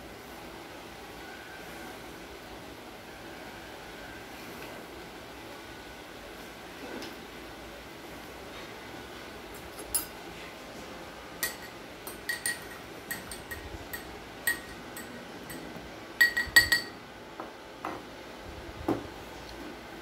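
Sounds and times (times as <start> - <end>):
metal spoon clinking in glass: 11.4 - 17.0.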